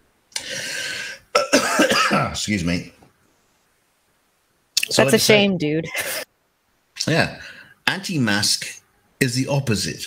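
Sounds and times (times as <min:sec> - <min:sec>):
man coughing: 0:01.4 - 0:02.4.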